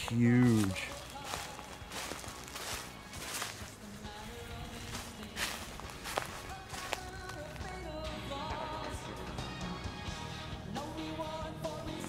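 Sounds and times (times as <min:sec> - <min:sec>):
footsteps in dry leaves: 0:00.0 - 0:08.0
faint music: 0:00.0 - 0:12.0.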